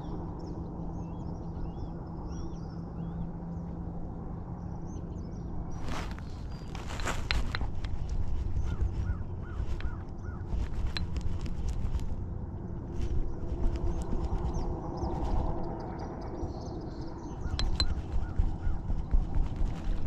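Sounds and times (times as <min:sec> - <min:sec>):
low steady rumble: 0:00.0 - 0:20.0
bird calling: 0:05.8 - 0:11.9, 0:17.2 - 0:20.0
reel and rod clicks: 0:05.8 - 0:12.2, 0:17.5 - 0:20.0.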